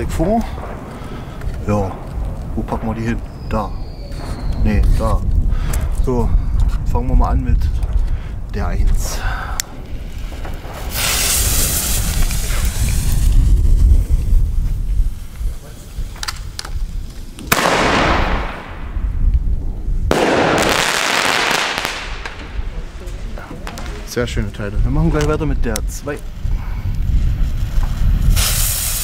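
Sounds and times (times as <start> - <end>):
firework mortar reports: 0.0 - 6.6, 7.5 - 29.0.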